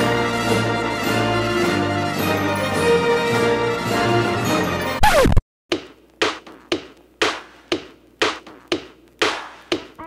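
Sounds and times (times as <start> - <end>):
percussion beat: 5.7 - 10.0.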